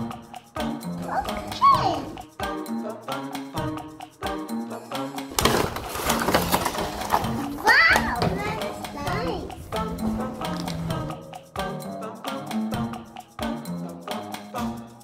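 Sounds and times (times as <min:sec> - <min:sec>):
child's voice: 0:01.0 - 0:02.3, 0:07.3 - 0:09.7
cardboard and plastic rustling: 0:05.3 - 0:09.5.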